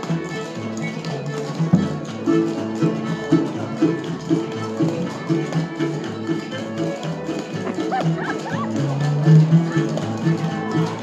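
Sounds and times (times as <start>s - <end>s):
bluegrass music: 0.0s - 11.0s
guitar: 0.0s - 11.0s.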